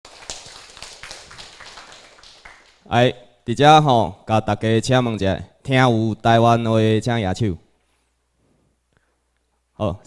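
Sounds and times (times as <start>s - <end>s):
faint room noise: 0.1s - 10.0s.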